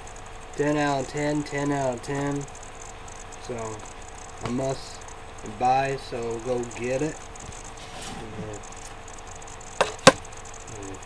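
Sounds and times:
sharp knocks: 9.8 - 10.3.

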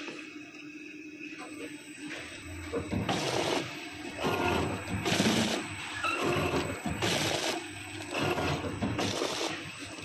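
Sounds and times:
packing machine running: 2.0 - 10.0.

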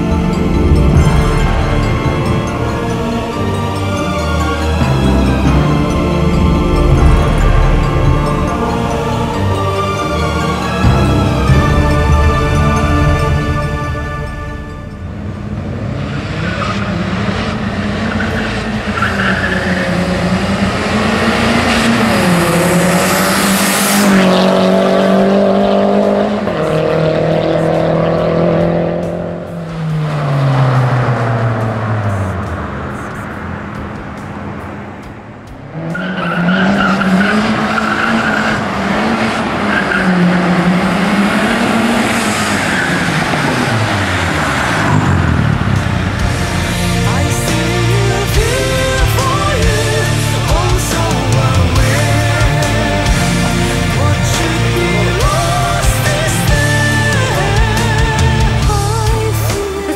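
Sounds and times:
small car engine revving: 0.0 - 34.6, 35.6 - 59.9.

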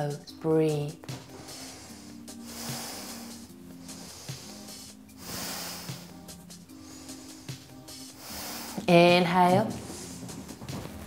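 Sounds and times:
soft background music: 0.0 - 11.0
long hissing breaths: 1.1 - 9.1, 9.8 - 10.7.

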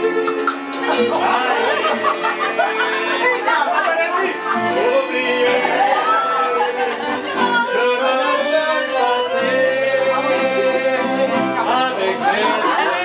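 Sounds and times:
accordion: 0.0 - 13.0
acoustic guitar: 0.0 - 13.0.

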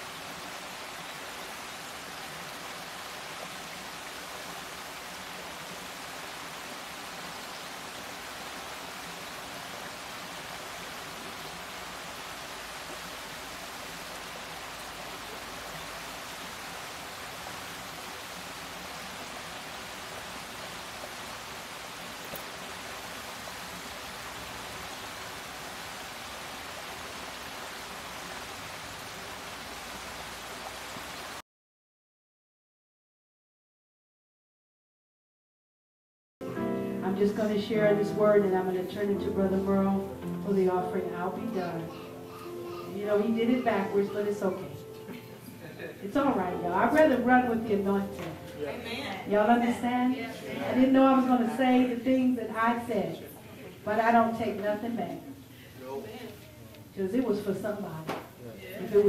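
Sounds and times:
waterfall rushing over rocks: 0.0 - 31.4.

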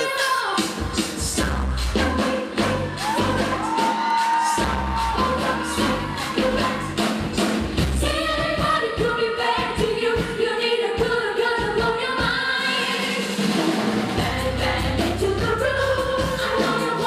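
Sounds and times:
woman singing pop live: 0.0 - 7.0, 14.2 - 17.0
bass: 0.6 - 10.4, 14.0 - 17.0.

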